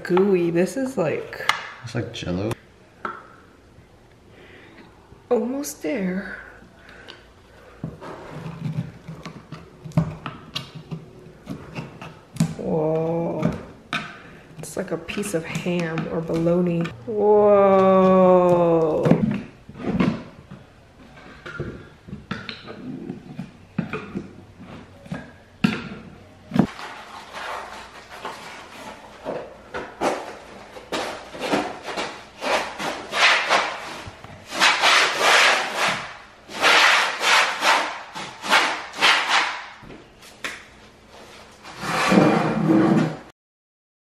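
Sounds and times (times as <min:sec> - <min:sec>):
metal scraper scraping adhesive: 0:32.4 - 0:39.7, 0:41.8 - 0:43.1.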